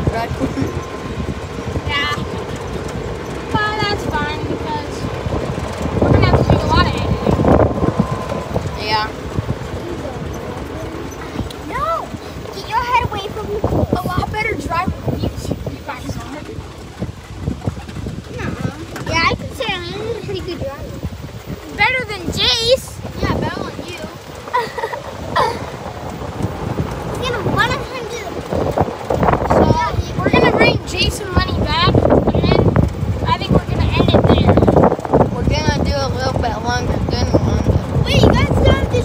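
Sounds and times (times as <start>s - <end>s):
golf cart rumbling over rough ground: 0.0s - 39.0s
wind: 0.0s - 39.0s
speech: 8.8s - 9.2s, 29.5s - 39.0s.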